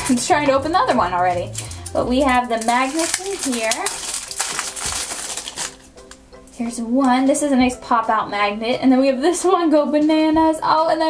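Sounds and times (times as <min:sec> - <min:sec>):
foil packet crinkling and tearing: 0:00.0 - 0:06.2.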